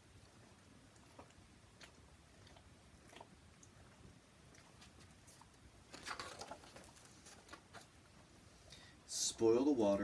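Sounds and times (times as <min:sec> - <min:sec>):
paper page rustling: 0:05.9 - 0:07.9.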